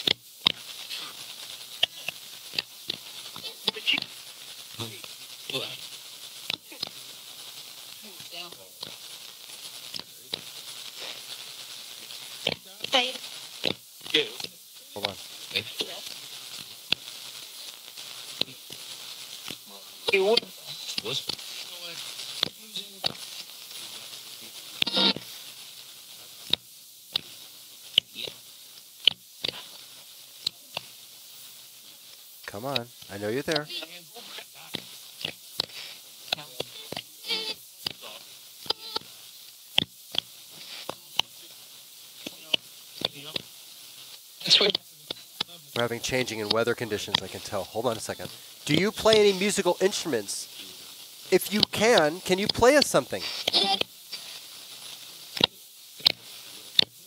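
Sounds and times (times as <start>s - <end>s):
fragments of radio voices: 0.0s - 25.4s, 32.5s - 39.1s, 40.5s - 41.6s, 44.4s - 56.9s
radio static hiss: 0.0s - 57.0s
rapid irregular clicks: 0.0s - 57.0s.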